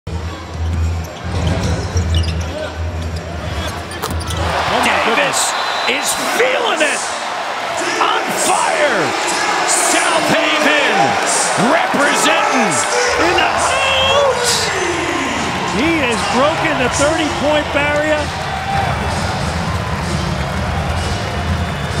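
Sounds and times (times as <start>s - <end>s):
crowd cheering: 4.3s - 22.0s
low arena rumble: 13.0s - 22.0s.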